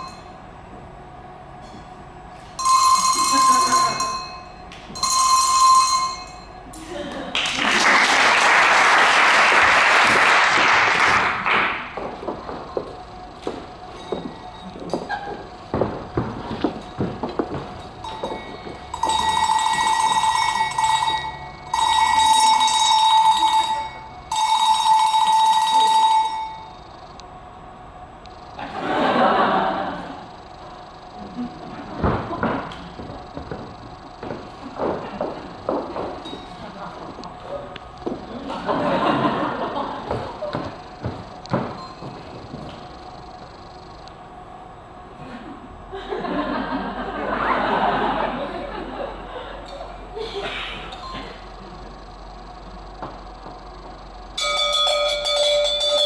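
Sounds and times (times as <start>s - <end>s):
bells shaken and ringing: 2.6s - 6.7s, 12.3s - 27.1s, 32.4s - 37.2s, 38.6s - 43.9s, 50.9s - 52.6s, 53.6s - 56.0s.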